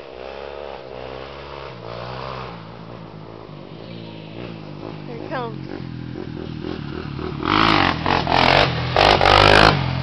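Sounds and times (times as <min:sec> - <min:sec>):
quad engine revving past: 0:00.0 - 0:10.0.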